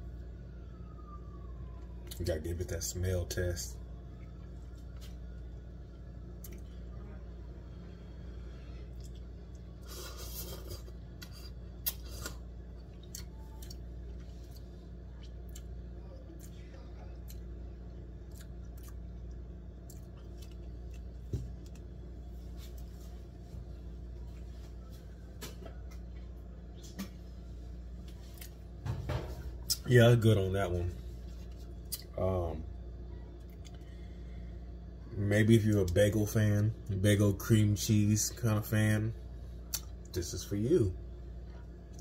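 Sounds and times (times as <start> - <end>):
steady low hum: 0.0 - 42.0
quiet chewing: 8.8 - 23.5.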